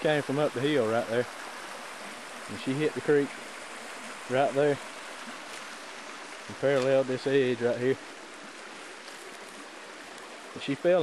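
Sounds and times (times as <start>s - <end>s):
creek water rushing over rocks: 0.0s - 11.0s.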